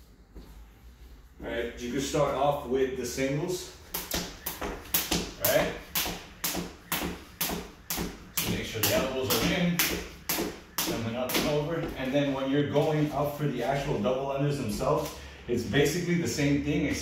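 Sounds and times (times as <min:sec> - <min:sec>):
jump rope tapping floor: 0:03.9 - 0:12.0.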